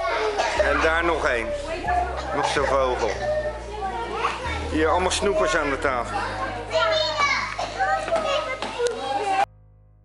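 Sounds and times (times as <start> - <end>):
faint music: 0.0 - 9.5
young children chattering: 0.0 - 9.5.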